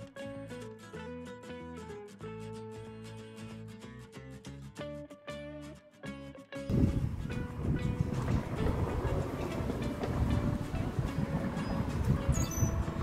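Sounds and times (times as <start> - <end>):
guitar music: 0.0 - 13.0
wind buffeting microphone: 6.7 - 13.0.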